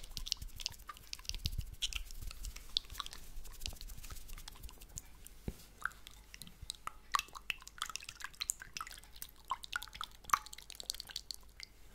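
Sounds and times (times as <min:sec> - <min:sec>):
tongue fluttering with water: 0:00.0 - 0:05.2, 0:05.8 - 0:11.8.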